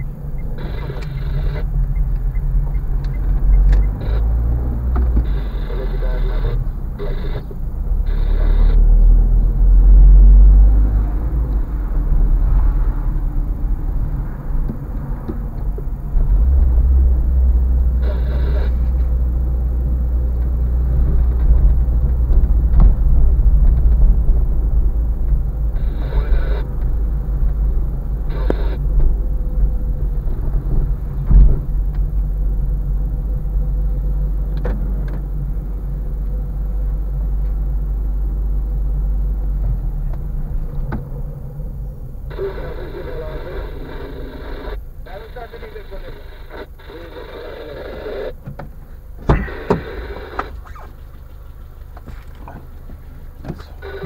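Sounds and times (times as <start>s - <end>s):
car engine and road rumble: 0.0s - 54.0s
muffled voices: 0.6s - 1.7s, 5.2s - 8.9s, 18.0s - 18.9s, 25.8s - 26.7s, 28.2s - 28.8s, 42.3s - 48.4s, 53.4s - 54.0s
car thump: 22.3s - 24.0s, 31.2s - 32.0s, 48.4s - 50.8s, 52.0s - 53.8s.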